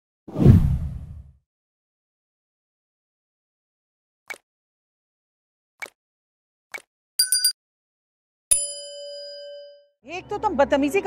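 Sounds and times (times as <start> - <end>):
whoosh sound effect: 0.3 - 1.3.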